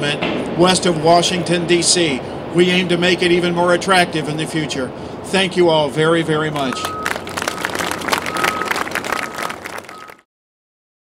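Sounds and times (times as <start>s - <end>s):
audience applauding: 6.6s - 10.2s.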